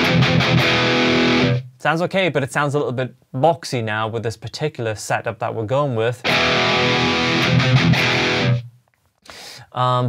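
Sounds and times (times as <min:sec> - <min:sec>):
distorted electric guitar lead: 0:00.0 - 0:01.7, 0:06.2 - 0:08.7.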